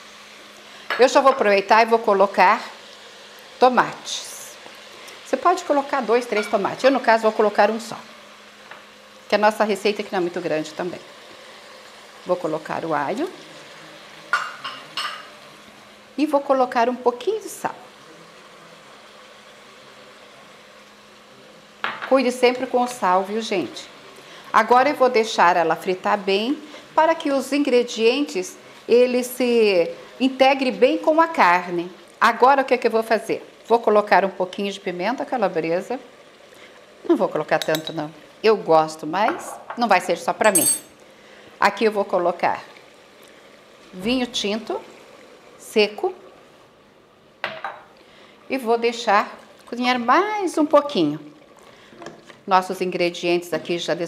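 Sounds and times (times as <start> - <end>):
faint steady hiss: 0.0 - 54.0
meat sizzling in pot: 0.0 - 54.0
kitchenware clink: 6.4 - 6.6, 14.3 - 15.3, 37.6 - 38.0, 40.4 - 41.0.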